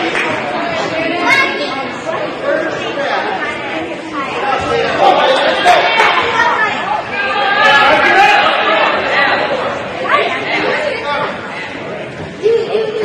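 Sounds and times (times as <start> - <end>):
chatter of many voices: 0.0 - 13.0.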